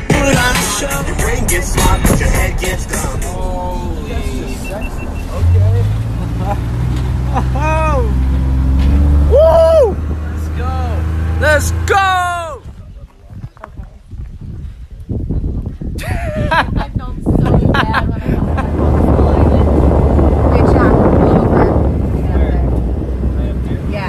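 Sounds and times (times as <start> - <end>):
people calling and whooping: 9.3 - 10.1.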